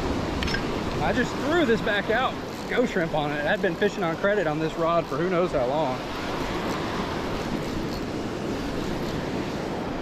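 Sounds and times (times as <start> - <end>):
breaking surf: 0.0 - 10.0.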